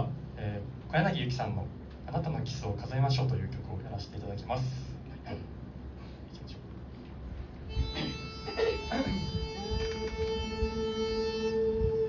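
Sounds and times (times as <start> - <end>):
pitch pipe note: 7.7 - 12.0.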